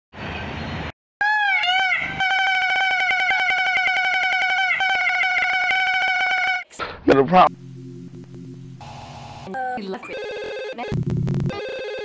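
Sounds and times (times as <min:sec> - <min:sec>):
wobbling electronic tone: 0:02.3 - 0:06.6.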